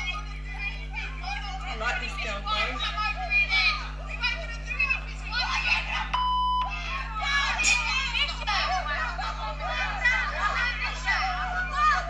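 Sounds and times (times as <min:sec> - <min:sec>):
women shouting and screaming: 0:00.0 - 0:12.0
censor bleep: 0:06.2 - 0:06.7.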